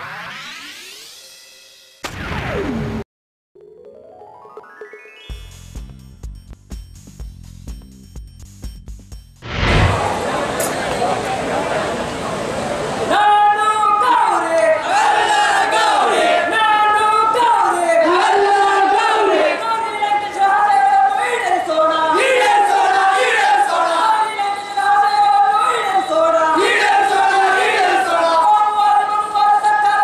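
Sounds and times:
synthesized rising sweep: 0.0s - 1.8s, 9.4s - 10.6s
sudden synth hit: 9.4s - 10.6s
tone gliding down to low hum: 9.4s - 10.6s
men shouting slogan into microphone: 13.1s - 30.0s.

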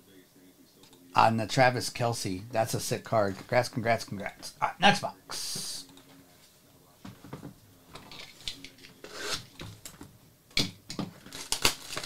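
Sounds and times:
plastic shrink wrap tearing: 11.2s - 12.0s.

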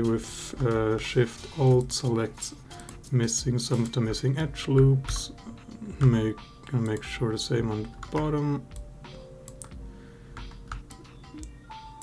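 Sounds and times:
soft background music: 0.0s - 12.0s
keyboard and mouse clicks: 7.7s - 9.8s, 10.4s - 12.0s.

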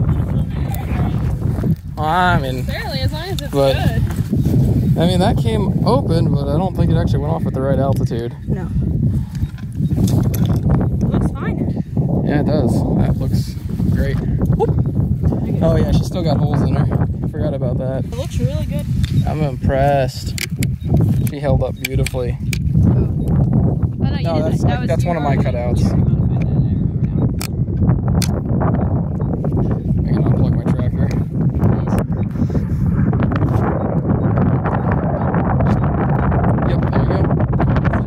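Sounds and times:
wind rumbling on microphone: 0.0s - 38.0s.

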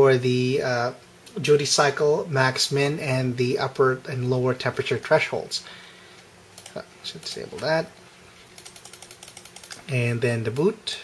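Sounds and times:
mouse scroll wheel clicking: 8.6s - 9.8s.

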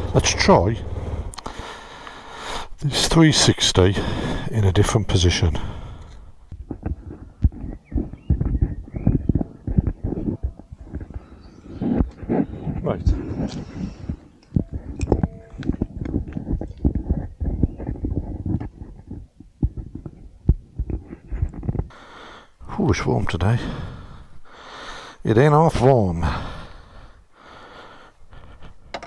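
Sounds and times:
camera handling bumps and rubbing: 6.5s - 11.2s.

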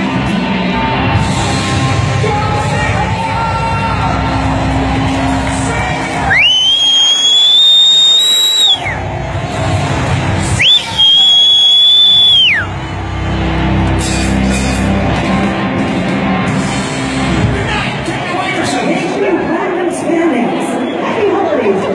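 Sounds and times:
live rock band: 0.0s - 7.0s, 8.8s - 18.0s.

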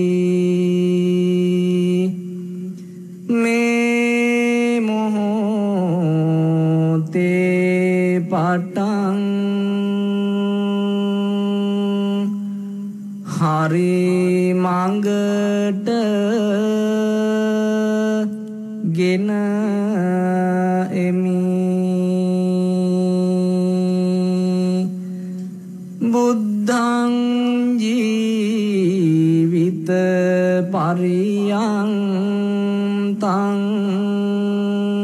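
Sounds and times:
person chanting: 0.0s - 35.0s.

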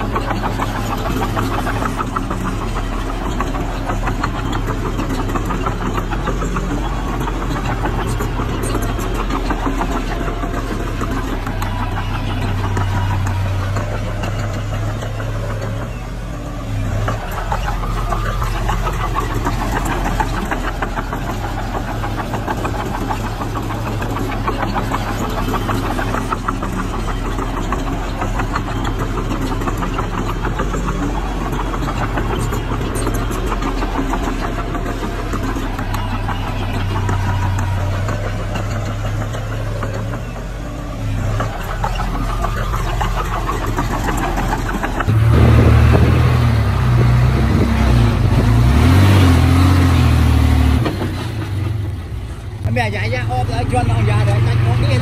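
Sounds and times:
bulldozer diesel engine: 0.0s - 55.0s.

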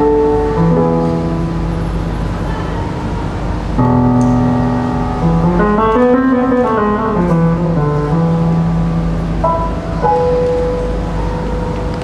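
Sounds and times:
jazz band with grand piano: 3.8s - 12.0s.

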